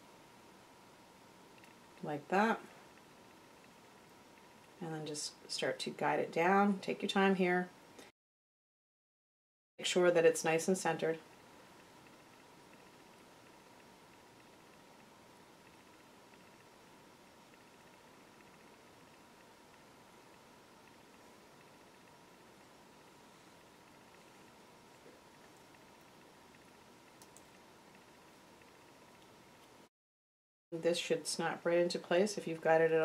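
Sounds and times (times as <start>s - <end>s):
faint steady hum: 0.0s - 8.1s, 9.8s - 29.9s, 30.8s - 33.0s
faint ticks: 23.6s - 29.8s.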